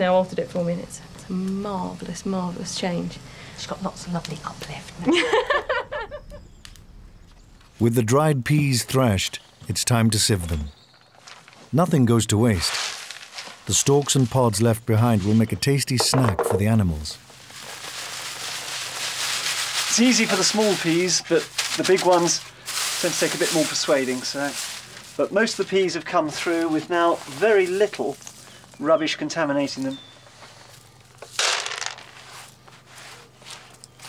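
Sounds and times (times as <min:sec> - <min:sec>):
dried peas rustling in a sieve: 0:11.1 - 0:11.8, 0:12.4 - 0:15.4, 0:17.4 - 0:28.4, 0:29.0 - 0:34.0.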